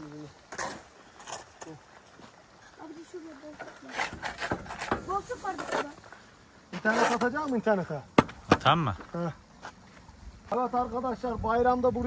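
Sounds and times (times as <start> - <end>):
voices: 0.0 - 12.0
shovel scraping and knocking: 3.6 - 6.0, 6.8 - 7.4.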